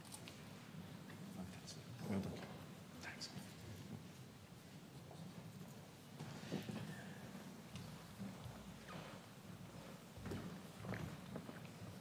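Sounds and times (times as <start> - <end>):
large hall background noise: 0.0 - 12.0
footsteps on stage: 5.0 - 12.0.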